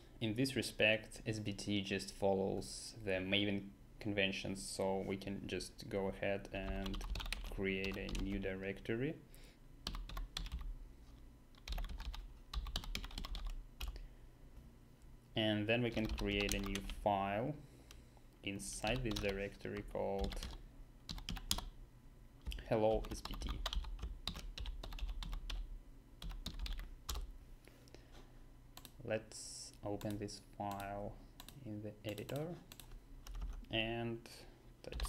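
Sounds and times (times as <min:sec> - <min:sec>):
typing on keyboard: 0:06.6 - 0:08.4, 0:09.8 - 0:10.7, 0:11.6 - 0:14.0, 0:15.9 - 0:17.0, 0:18.9 - 0:21.7, 0:22.4 - 0:25.6, 0:26.2 - 0:27.3, 0:30.0 - 0:33.6.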